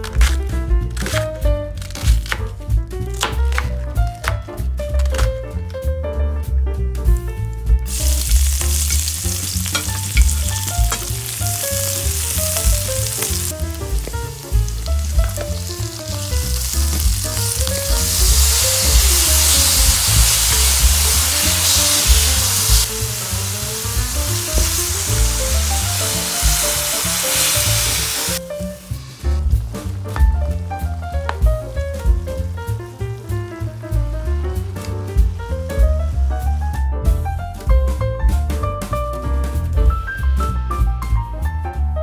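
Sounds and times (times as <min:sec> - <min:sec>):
background music: 0:00.0 - 0:42.0
food sizzling in a pan: 0:07.9 - 0:29.4.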